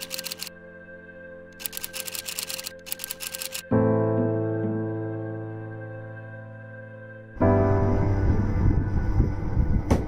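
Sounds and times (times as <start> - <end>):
rapid typing clicks: 0.0 - 0.5, 1.6 - 3.6
soft music pad: 0.0 - 10.0.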